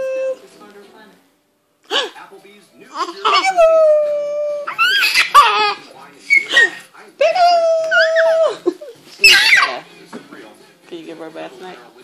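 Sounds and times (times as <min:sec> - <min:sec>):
baby squealing and laughing: 0:03.0 - 0:06.8, 0:09.2 - 0:09.8.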